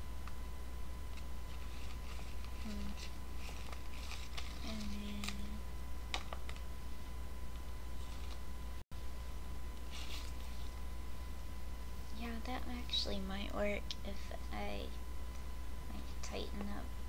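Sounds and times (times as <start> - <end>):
closed-mouth hum: 0.0 - 17.0
low electrical hum: 0.0 - 17.0
faint clicks and rustles of handling: 1.1 - 6.7, 7.5 - 8.4, 9.7 - 11.5.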